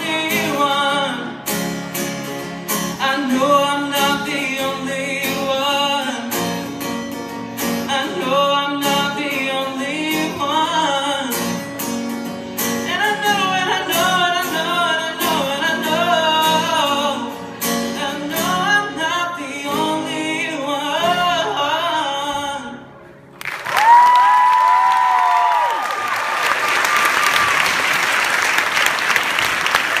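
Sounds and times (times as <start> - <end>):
man singing: 0.0 - 1.8, 2.8 - 6.9, 7.6 - 11.9, 12.7 - 23.0
acoustic guitar: 0.0 - 23.4
audience applause and cheering: 23.4 - 30.0.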